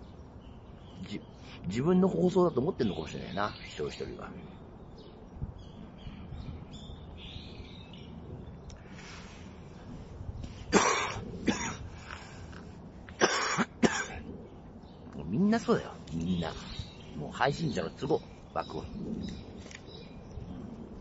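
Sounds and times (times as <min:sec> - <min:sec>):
man coughing: 0:10.7 - 0:11.9, 0:13.2 - 0:14.2.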